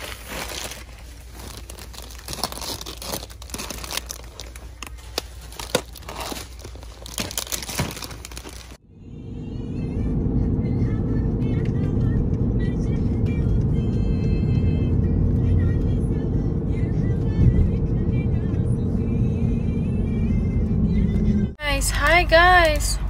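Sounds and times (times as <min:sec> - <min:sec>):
road and engine rumble: 0:00.0 - 0:23.0
music with singing voice: 0:09.5 - 0:21.6.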